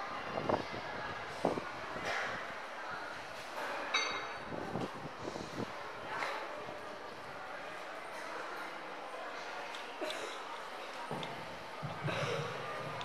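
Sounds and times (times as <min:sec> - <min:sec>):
faint voices: 0:00.0 - 0:13.0.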